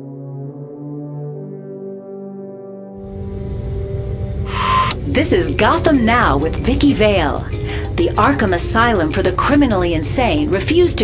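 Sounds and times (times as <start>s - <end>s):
low rumbling drone: 3.0s - 11.0s
steady hum: 3.0s - 11.0s
electronic burst with beep: 4.5s - 5.0s.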